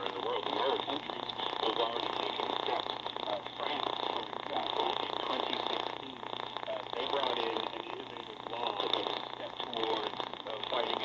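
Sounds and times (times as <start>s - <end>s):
radio static hiss: 0.0s - 11.0s
radio voice through small speaker: 0.0s - 11.0s.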